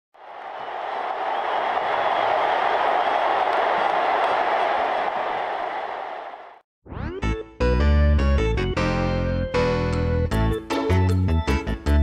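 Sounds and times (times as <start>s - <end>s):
large crowd roaring: 0.2s - 6.6s.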